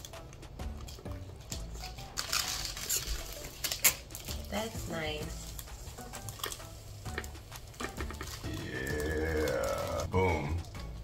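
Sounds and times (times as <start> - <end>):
plastic film crinkling: 1.6 - 10.1.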